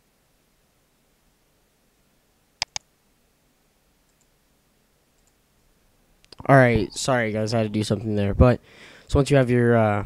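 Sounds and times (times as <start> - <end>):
computer mouse clicks: 2.6 - 2.9, 5.2 - 5.4.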